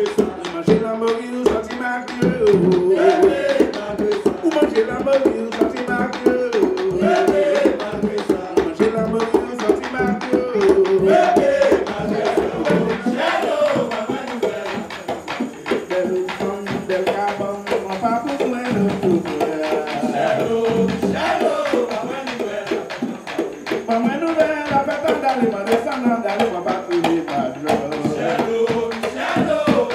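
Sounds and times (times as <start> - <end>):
hand drum beating fast rhythm: 0.0 - 29.9
several people singing: 0.0 - 29.9.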